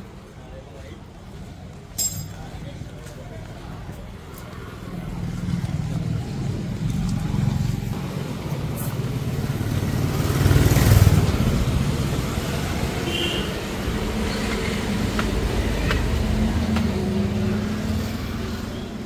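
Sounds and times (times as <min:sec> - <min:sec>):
street traffic: 0:00.0 - 0:19.0
motorcycle passing: 0:04.9 - 0:19.0.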